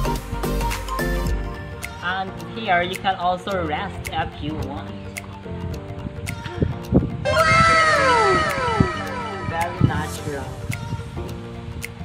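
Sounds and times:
background music: 0:00.0 - 0:12.0
downward gliding sound effect: 0:07.3 - 0:10.3.

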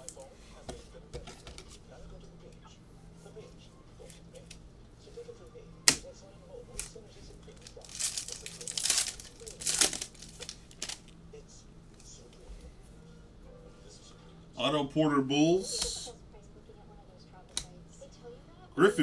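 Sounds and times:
wrapper tearing and crinkling: 0:07.5 - 0:11.1.

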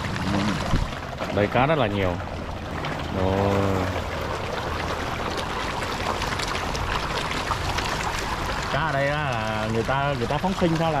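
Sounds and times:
fish splashing in water: 0:00.0 - 0:11.0.

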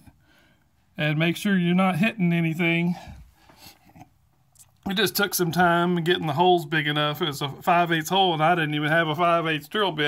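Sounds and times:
man talking: 0:01.0 - 0:03.2, 0:04.8 - 0:10.0.

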